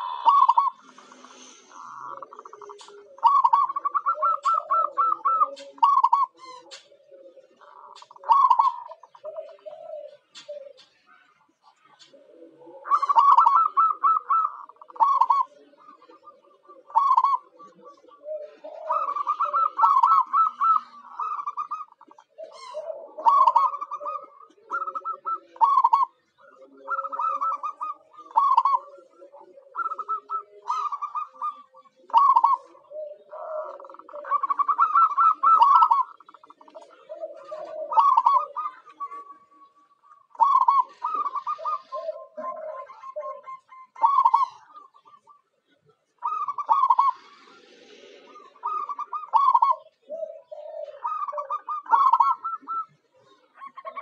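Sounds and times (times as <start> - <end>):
lower-pitched bird call: 0.0 - 6.9, 12.0 - 45.5
doves cooing: 0.0 - 54.0.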